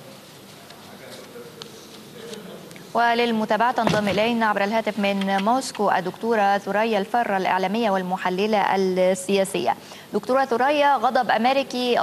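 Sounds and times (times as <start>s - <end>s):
faint murmur of voices: 0.0s - 5.4s.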